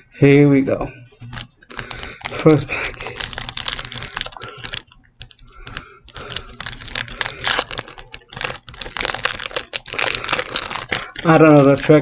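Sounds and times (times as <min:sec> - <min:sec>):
foil wrapper crinkling and tearing: 0:01.2 - 0:12.0.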